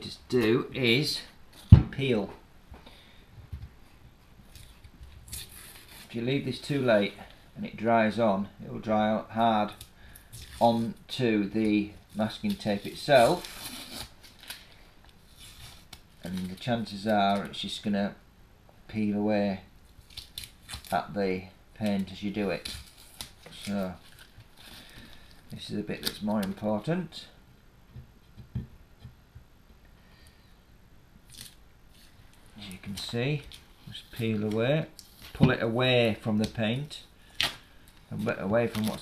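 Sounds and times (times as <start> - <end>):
masking tape peeling crackle: 4.5 - 6.2, 11.6 - 17.5, 19.9 - 21.2, 21.8 - 26.6, 31.3 - 35.4, 37.2 - 39.0
tape ripping: 4.5 - 6.2, 12.1 - 14.7, 20.0 - 21.0, 21.8 - 24.9, 31.3 - 32.1.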